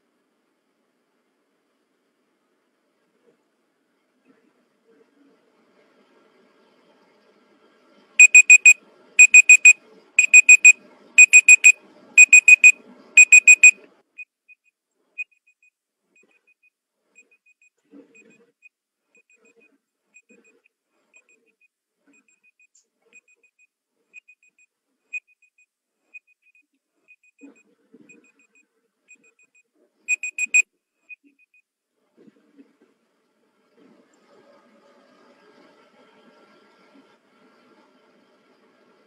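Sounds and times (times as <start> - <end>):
timer alarm high beeps: 8.2 - 13.8, 30.1 - 30.6.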